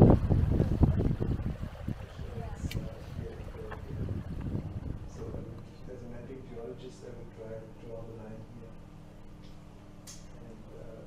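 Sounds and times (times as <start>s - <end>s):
wind buffeting microphone: 0.0s - 6.7s.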